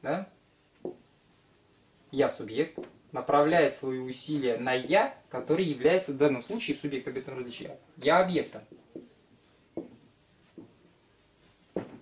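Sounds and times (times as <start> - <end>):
marker writing on a whiteboard: 0.1 - 2.9, 8.4 - 12.0.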